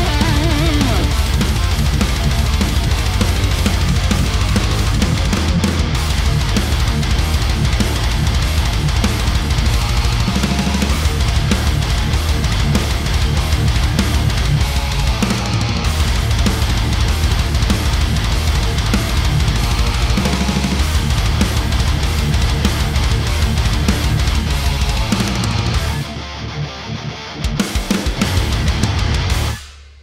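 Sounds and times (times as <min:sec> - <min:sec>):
heavy metal music: 0:00.0 - 0:30.0.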